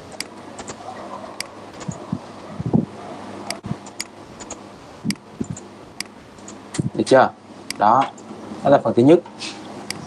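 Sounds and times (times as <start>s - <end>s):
background hiss: 0.0s - 10.0s
computer mouse clicking: 0.1s - 0.8s, 1.4s - 2.0s, 3.5s - 6.9s.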